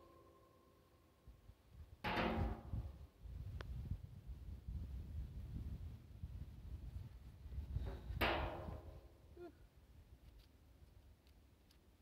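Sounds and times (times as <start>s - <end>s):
wind rumbling on microphone: 1.3s - 10.4s.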